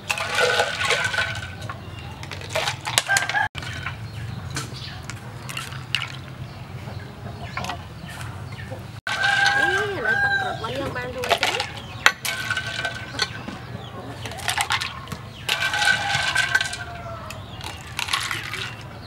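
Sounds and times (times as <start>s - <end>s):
metal ladle clinking on glass jar: 0.0s - 4.1s, 11.2s - 13.5s, 14.2s - 18.9s
chickens calling: 0.0s - 19.0s.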